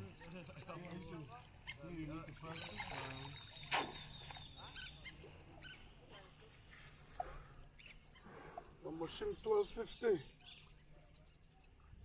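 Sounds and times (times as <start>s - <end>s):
dripping cast net: 2.7s - 4.3s.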